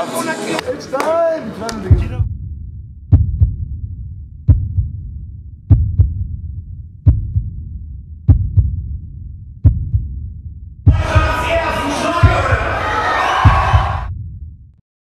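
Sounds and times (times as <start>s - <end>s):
heartbeat thumps: 1.8s - 14.5s
steady low rumble: 1.9s - 11.4s.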